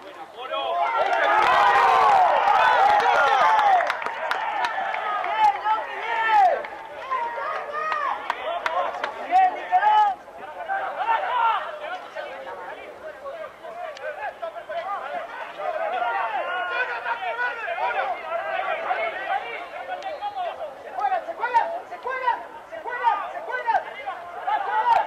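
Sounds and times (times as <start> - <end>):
crowd shouting and cheering: 0.0 - 25.0.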